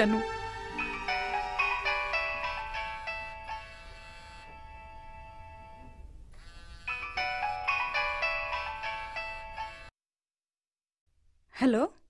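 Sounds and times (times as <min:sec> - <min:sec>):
mobile phone musical ringtone: 0:00.0 - 0:09.9.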